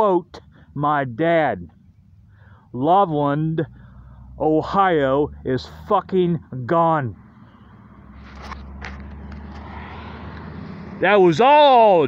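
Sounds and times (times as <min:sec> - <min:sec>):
low engine drone: 0:00.0 - 0:11.2.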